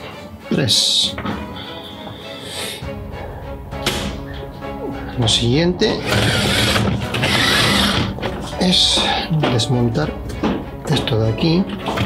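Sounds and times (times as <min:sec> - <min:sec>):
robot vacuum scraping on table: 0:06.0 - 0:08.2.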